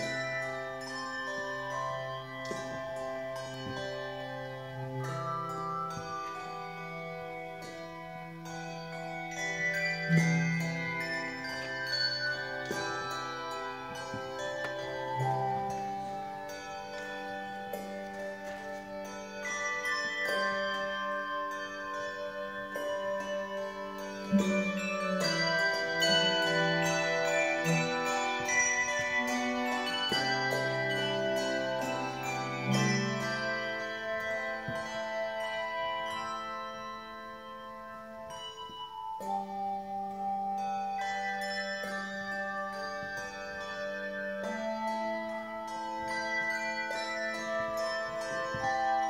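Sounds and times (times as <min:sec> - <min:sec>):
handbell choir playing: 0:00.0 - 0:49.0
low bass bell ringing: 0:08.5 - 0:39.9.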